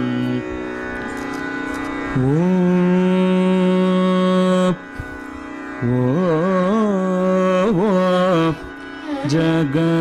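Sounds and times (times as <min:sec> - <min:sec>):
man singing long held note: 0:00.0 - 0:01.0, 0:02.1 - 0:10.0
tanpura drone: 0:00.0 - 0:10.0.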